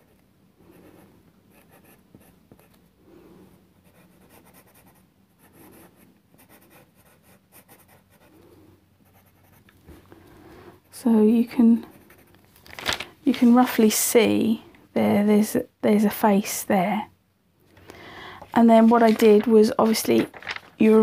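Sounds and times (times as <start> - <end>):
pencil scratching on paper: 0.0 - 2.8, 3.8 - 9.7, 11.8 - 12.4.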